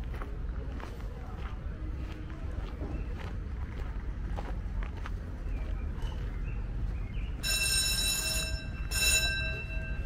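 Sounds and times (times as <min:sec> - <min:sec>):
electric bell ringing: 0:07.4 - 0:10.0.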